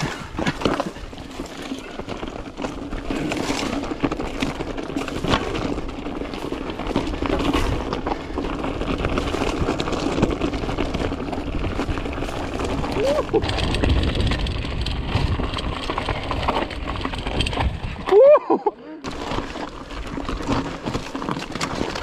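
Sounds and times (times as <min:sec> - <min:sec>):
tyres crunching over stones: 0:00.0 - 0:18.2, 0:19.0 - 0:22.0
bike rattling: 0:00.0 - 0:22.0.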